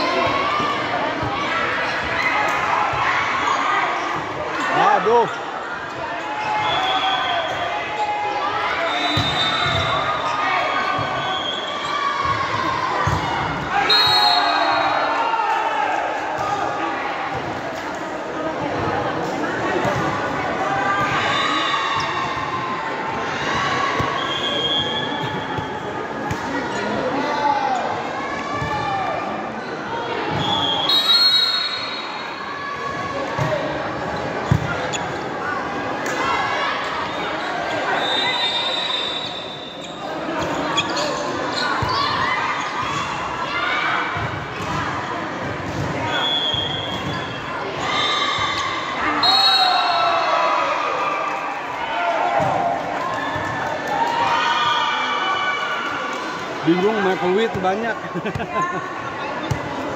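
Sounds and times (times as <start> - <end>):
crowd chattering and shouting: 0.0 - 59.9
shrill whistle blasts: 6.5 - 7.6, 8.8 - 11.9, 13.9 - 14.8, 24.2 - 25.4, 30.4 - 32.2, 37.9 - 39.9, 46.1 - 47.3, 49.1 - 50.2.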